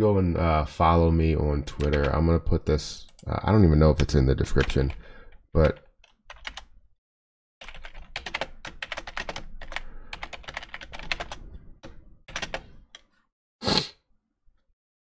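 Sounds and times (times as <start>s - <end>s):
keyboard typing: 1.7s - 2.2s, 4.5s - 6.8s, 7.6s - 13.1s.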